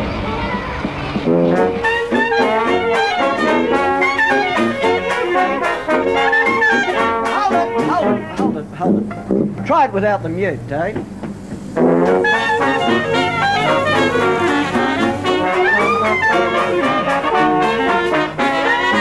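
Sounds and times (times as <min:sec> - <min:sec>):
jazz band playing: 0:00.0 - 0:19.0
person speaking: 0:07.2 - 0:11.0.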